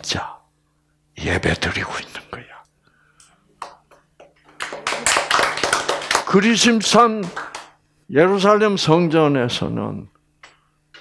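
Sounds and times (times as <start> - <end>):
person's voice: 1.2 - 2.7
hand claps: 3.6 - 6.4, 7.1 - 7.8.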